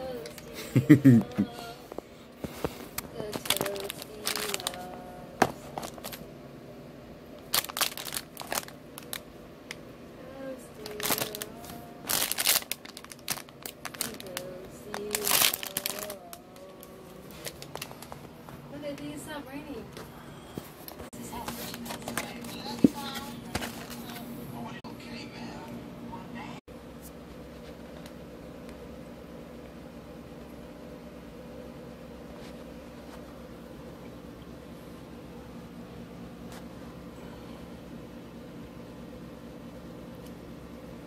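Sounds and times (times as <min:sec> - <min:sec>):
plastic packaging crinkling: 0:02.9 - 0:06.2, 0:07.4 - 0:09.3, 0:10.8 - 0:18.4, 0:20.7 - 0:24.3.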